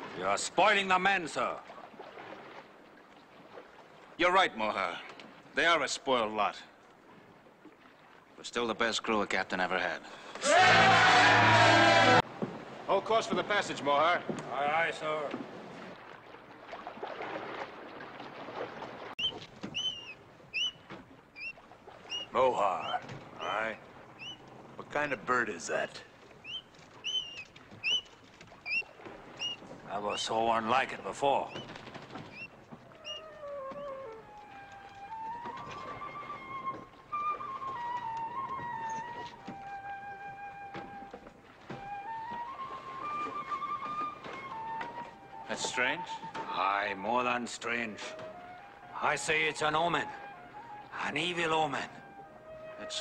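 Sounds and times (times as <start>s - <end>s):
sea and ship ambience: 0.0s - 53.0s
flute-like melody: 10.5s - 12.2s, 32.9s - 46.5s, 47.9s - 53.0s
bird whistled chirps: 19.2s - 20.8s, 21.4s - 23.0s, 24.2s - 24.4s, 26.4s - 28.1s, 28.7s - 29.6s, 31.5s - 31.7s, 32.3s - 34.0s.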